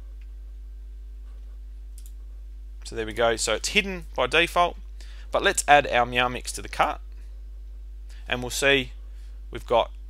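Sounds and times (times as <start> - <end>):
low electrical hum: 0.0 - 10.0
computer mouse click: 2.0 - 2.2.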